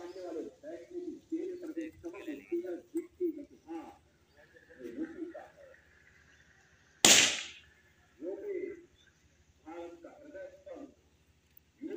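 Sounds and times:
sharp bang: 0:07.0 - 0:07.6.

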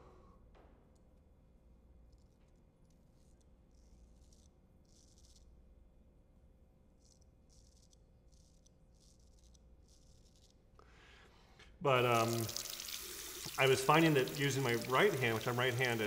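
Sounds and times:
straight razor scraping stubble: 0:03.0 - 0:05.6, 0:07.0 - 0:10.6.

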